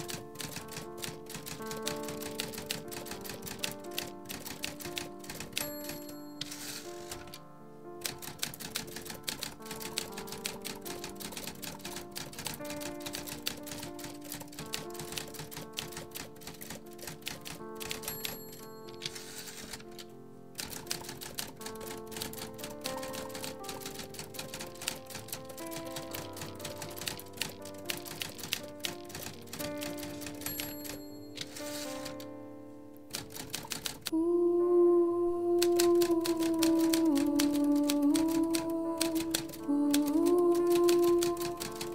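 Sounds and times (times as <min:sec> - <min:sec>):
typewriter keys clacking: 0:00.0 - 0:07.4, 0:08.0 - 0:32.3, 0:33.1 - 0:34.1, 0:35.6 - 0:41.9
slow music of held notes: 0:00.0 - 0:41.9
soft film score: 0:00.0 - 0:41.9.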